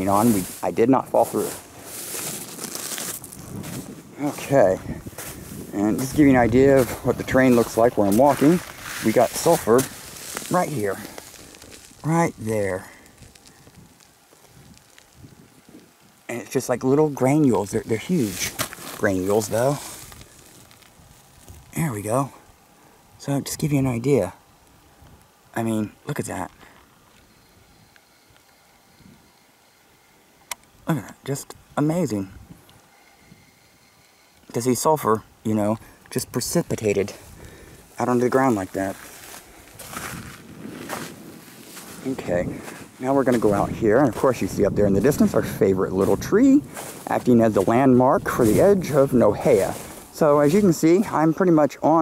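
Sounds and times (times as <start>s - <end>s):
footsteps crunching on cinder: 0.0s - 21.9s, 35.7s - 51.5s
faint wind: 0.0s - 52.0s.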